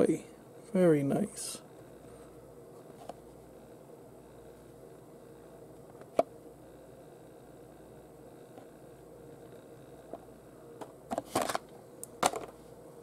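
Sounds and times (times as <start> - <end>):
faint room hiss: 0.0 - 13.0.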